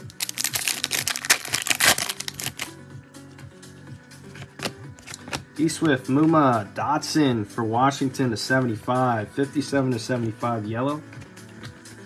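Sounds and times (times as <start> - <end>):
foil wrapper crinkling: 0.0 - 2.7
background music: 0.0 - 12.0.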